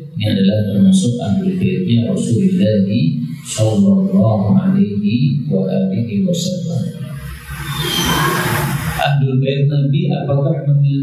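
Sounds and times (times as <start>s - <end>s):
man speaking: 0.0s - 7.0s, 9.0s - 11.0s.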